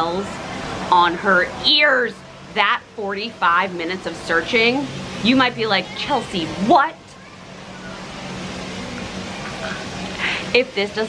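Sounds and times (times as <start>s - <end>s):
distant traffic rush: 0.0s - 11.0s.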